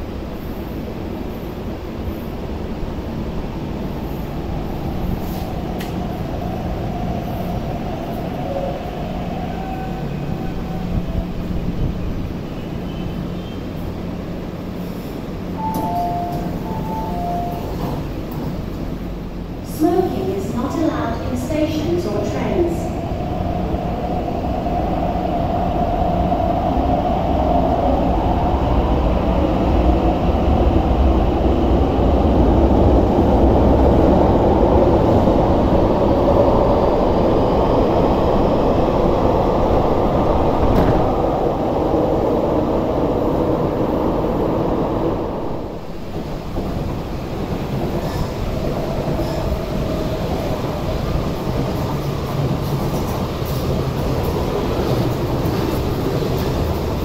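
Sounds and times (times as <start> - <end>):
distant electric train passing: 0.0 - 57.0
electric train running past: 0.0 - 57.0.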